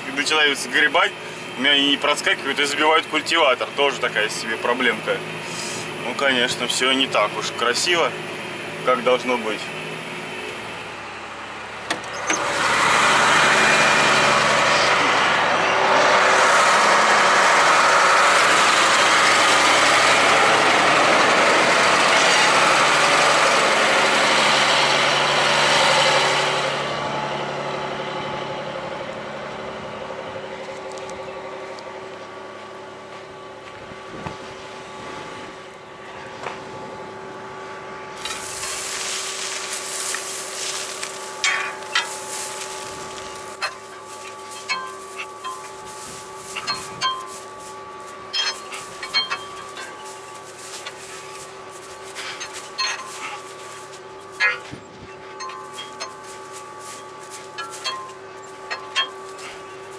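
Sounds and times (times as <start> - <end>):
tractor engine running: 0.0 - 59.9
rustling: 38.2 - 59.9.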